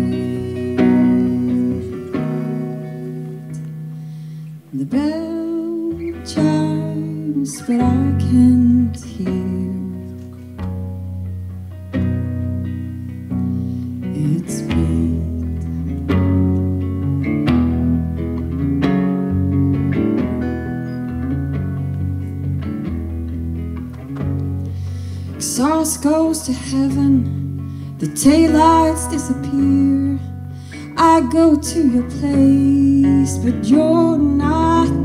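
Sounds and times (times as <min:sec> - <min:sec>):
person singing: 0:00.0 - 0:04.1, 0:04.7 - 0:10.5, 0:14.1 - 0:15.7, 0:25.4 - 0:35.0
acoustic guitar chords: 0:00.0 - 0:35.0.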